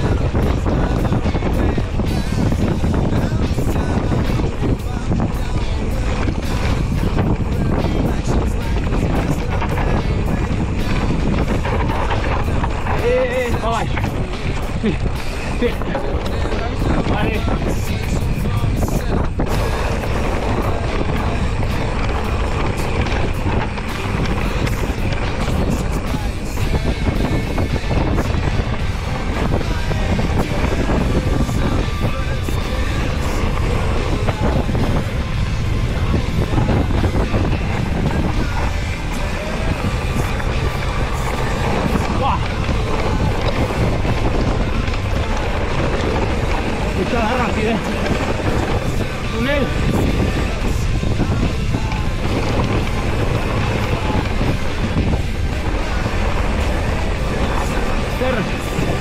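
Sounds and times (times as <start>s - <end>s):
bike tyres rolling on gravel: 0.0s - 59.0s
wind rumbling on microphone: 0.0s - 59.0s.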